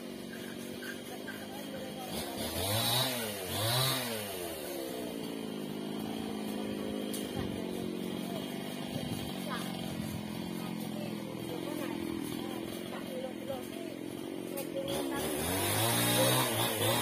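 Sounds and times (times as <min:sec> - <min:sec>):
chainsaw revving and running: 0:00.0 - 0:17.0.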